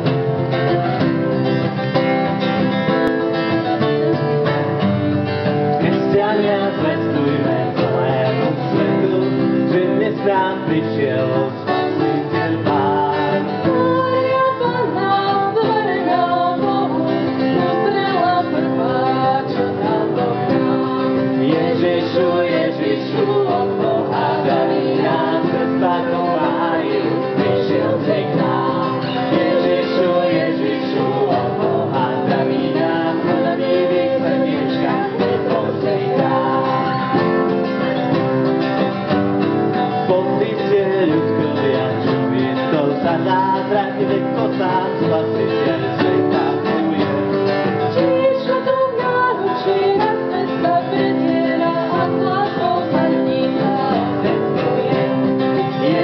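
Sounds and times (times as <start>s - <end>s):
acoustic guitars strummed: 0.0s - 56.0s
voices singing: 0.0s - 56.0s.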